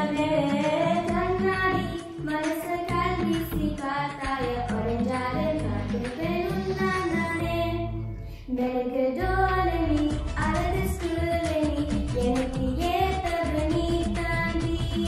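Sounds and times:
girls singing: 0:00.0 - 0:15.0.

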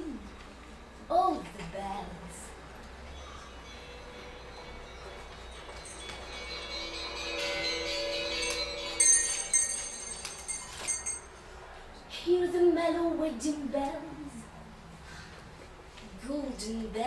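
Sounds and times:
bells chiming: 0:03.4 - 0:11.6.

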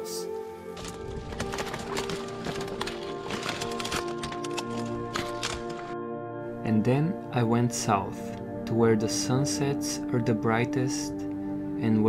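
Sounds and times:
background music: 0:00.0 - 0:12.0
twigs and brush snapping: 0:00.7 - 0:06.0.

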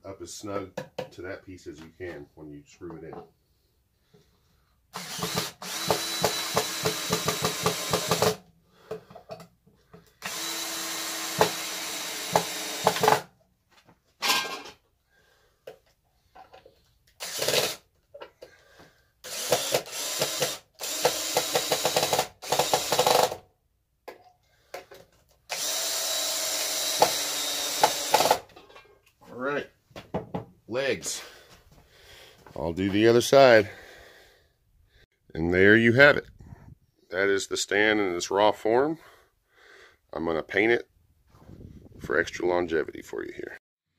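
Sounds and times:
cordless drill driving screws into wood: 0:04.9 - 0:08.4, 0:10.0 - 0:13.3, 0:17.1 - 0:17.9, 0:19.2 - 0:23.5, 0:25.5 - 0:28.6.

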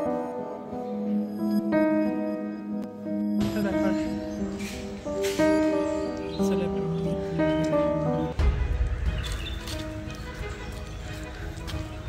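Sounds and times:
faint background music: 0:00.0 - 0:12.0
guitar music: 0:00.0 - 0:12.0
footsteps on paved path: 0:03.4 - 0:12.0.

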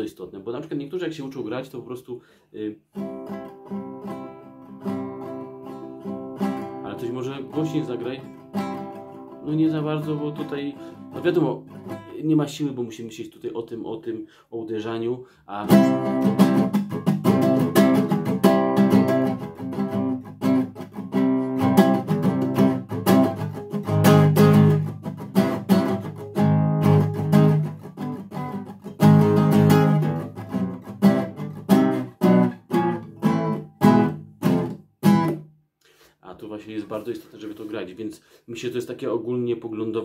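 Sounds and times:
nylon-string guitar strumming chords: 0:02.9 - 0:12.2, 0:15.6 - 0:35.5.

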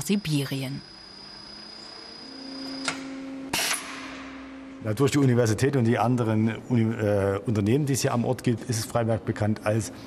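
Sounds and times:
faint high whine: 0:00.0 - 0:08.7
low electrical hum: 0:00.0 - 0:10.0.

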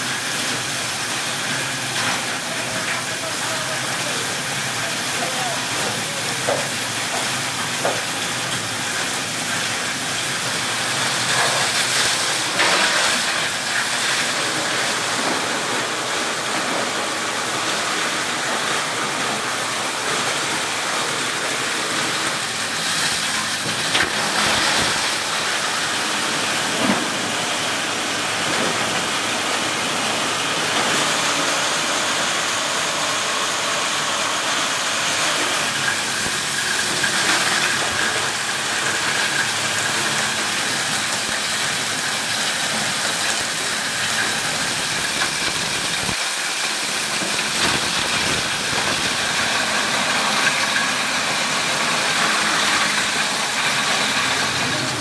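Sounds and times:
plastic crusher running: 0:00.0 - 0:55.0.

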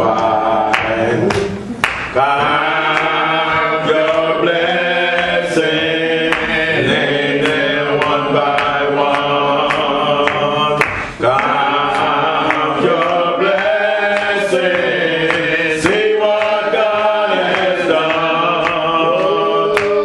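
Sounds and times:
man singing a slow hymn: 0:00.0 - 0:01.3, 0:02.2 - 0:20.0
voices singing along: 0:00.0 - 0:20.0.

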